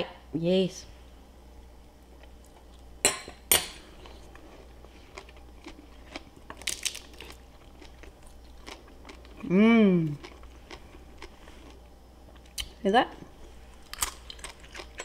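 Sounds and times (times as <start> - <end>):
crunching of taco shell being chewed: 4.0 - 12.8, 13.7 - 15.0.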